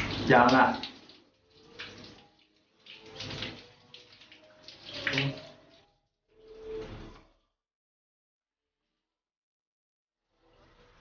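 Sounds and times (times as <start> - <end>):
running water spraying: 0.0 - 5.8.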